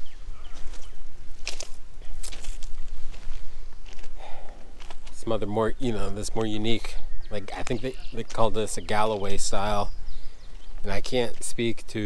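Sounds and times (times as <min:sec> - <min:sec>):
footsteps on gravel: 0:00.0 - 0:09.8, 0:10.4 - 0:11.9.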